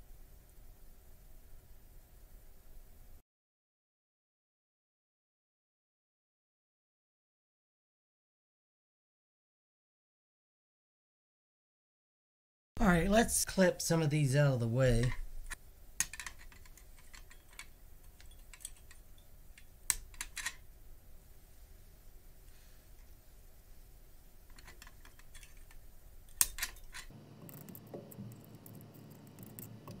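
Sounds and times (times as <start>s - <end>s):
small handling ticks: 24.5s - 30.0s.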